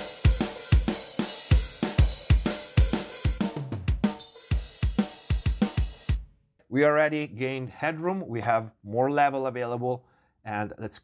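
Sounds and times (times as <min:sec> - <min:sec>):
drum kit playing fast beat: 0:00.0 - 0:06.3.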